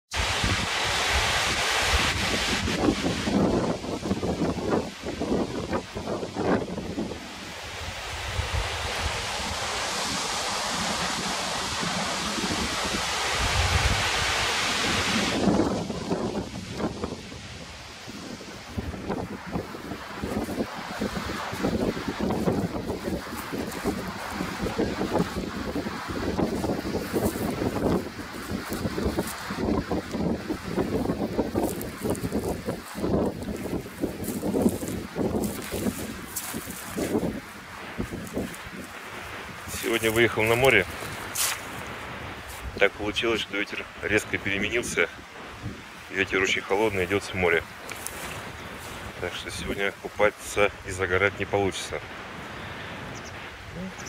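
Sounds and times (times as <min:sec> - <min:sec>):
surf breaking on beach: 0:00.1 - 0:53.8
wind buffeting microphone: 0:00.1 - 0:54.0.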